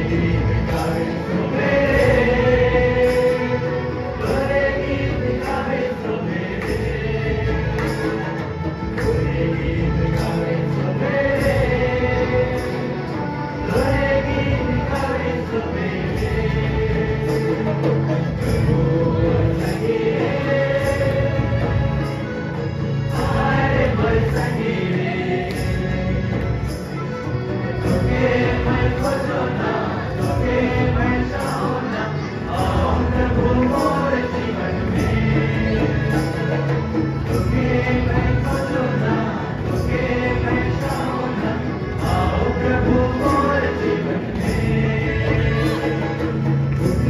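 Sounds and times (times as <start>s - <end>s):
choir singing gospel: 0.0s - 47.0s.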